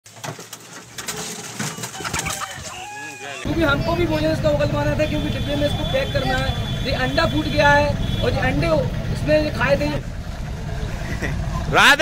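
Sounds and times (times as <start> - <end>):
chickens calling: 1.6 - 3.5.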